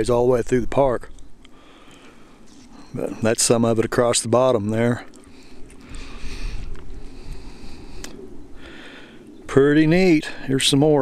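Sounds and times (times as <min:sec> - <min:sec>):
steady hiss: 0:01.4 - 0:11.0
wind rumbling on microphone: 0:05.3 - 0:11.0.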